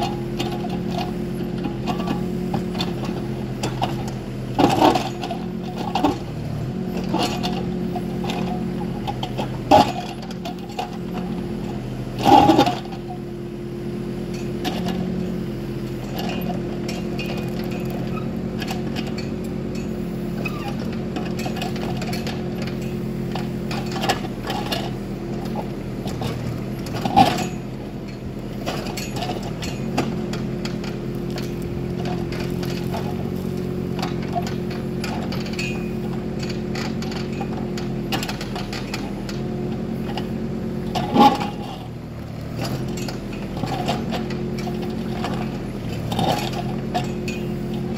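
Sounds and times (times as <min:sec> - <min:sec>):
excavator diesel engine running: 0:00.0 - 0:47.9.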